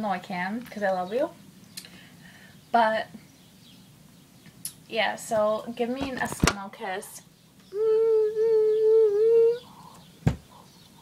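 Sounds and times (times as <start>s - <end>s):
woman singing a long note: 7.7s - 9.7s.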